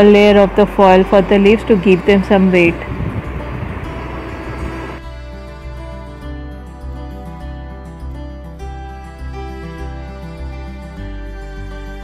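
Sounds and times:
low hum: 0.0s - 5.0s.

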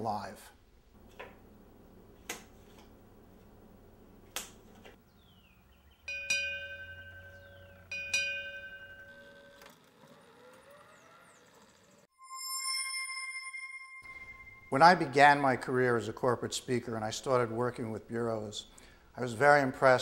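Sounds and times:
metal bell ringing: 6.1s - 9.7s, 12.2s - 15.5s.

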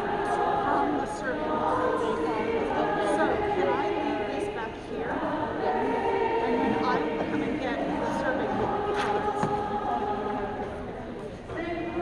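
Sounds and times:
woman's voice leading singing: 0.0s - 10.9s
congregation singing: 0.0s - 12.0s.

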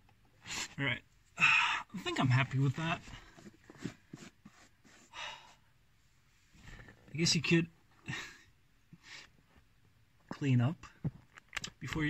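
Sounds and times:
person breathing: 5.0s - 5.7s.

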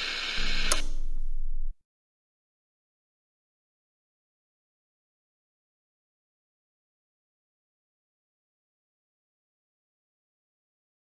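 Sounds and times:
sharp click: 0.4s - 1.3s.

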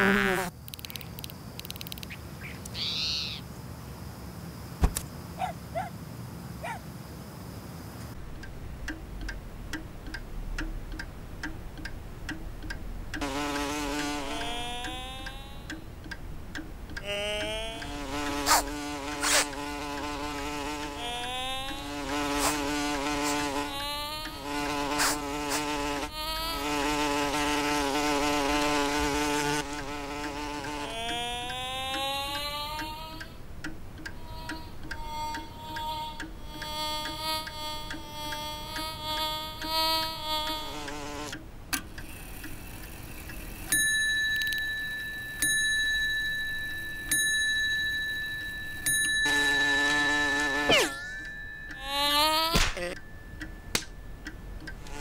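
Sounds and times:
cartoon insect buzzing: 0.0s - 2.1s, 13.2s - 33.5s, 34.1s - 41.4s, 49.2s - 53.1s, 54.8s - 55.0s
high ringing tone: 43.6s - 55.0s
sharp strike: 52.4s - 52.9s.

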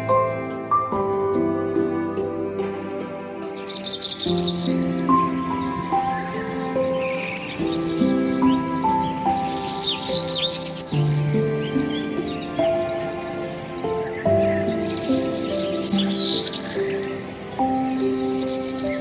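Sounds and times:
gentle instrumental music: 0.0s - 19.0s
bird chirps: 3.6s - 19.0s.

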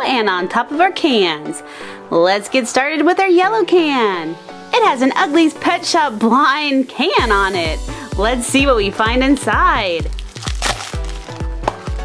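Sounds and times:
background music with steady beat: 0.0s - 12.0s
plastic rustle of can opening: 10.1s - 12.0s.

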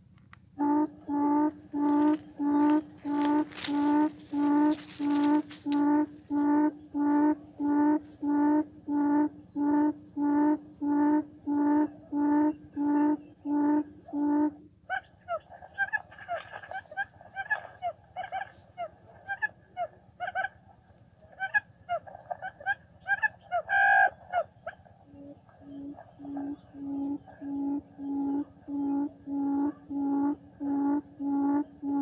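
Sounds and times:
quail chattering: 0.6s - 20.6s, 21.3s - 32.0s
quail hooting call: 0.6s - 20.6s, 21.3s - 32.0s.

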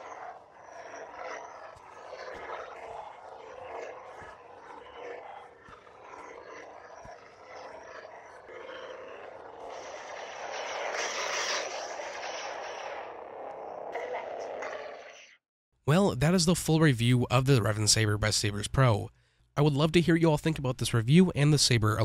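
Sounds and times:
lightsaber hum and swing sounds: 0.0s - 15.2s.

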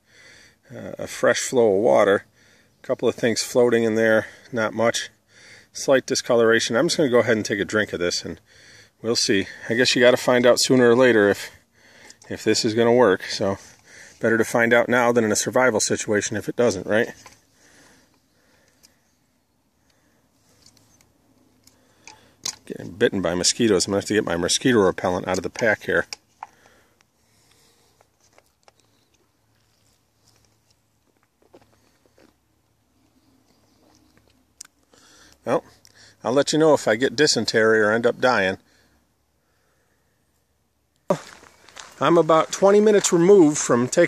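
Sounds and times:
faint footsteps on path: 25.5s - 35.4s, 41.0s - 44.0s.

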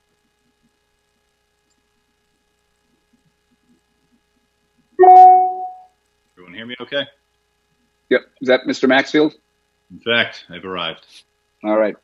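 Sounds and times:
electronic chime: 5.0s - 5.8s.

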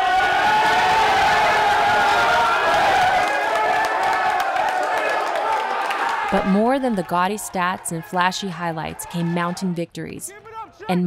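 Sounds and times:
men shouting and cheering: 0.0s - 11.0s
scattered clapping: 0.6s - 9.6s.

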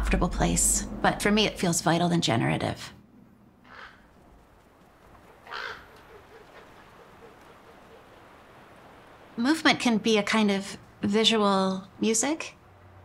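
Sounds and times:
faint steady background noise: 0.0s - 13.0s
bird calls: 3.6s - 4.2s, 4.8s - 8.7s.

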